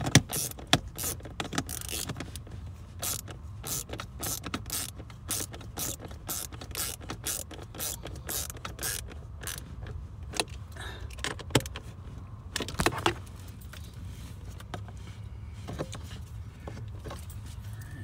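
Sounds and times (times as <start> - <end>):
socket ratchet clicking: 0.0 - 2.3, 3.0 - 9.7.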